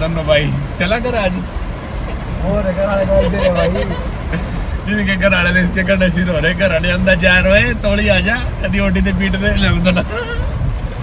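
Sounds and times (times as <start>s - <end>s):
car road and engine rumble: 0.0s - 11.0s
man laughing and vocalising: 3.1s - 4.1s.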